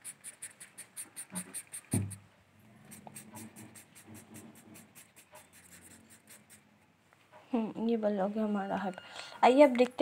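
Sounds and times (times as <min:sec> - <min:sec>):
pen scribbling on paper: 0:00.0 - 0:02.2, 0:02.9 - 0:06.7
knock: 0:01.9 - 0:02.2.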